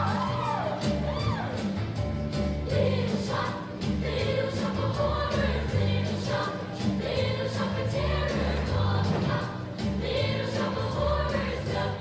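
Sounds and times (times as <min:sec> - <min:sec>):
girls singing together: 0:02.6 - 0:12.0.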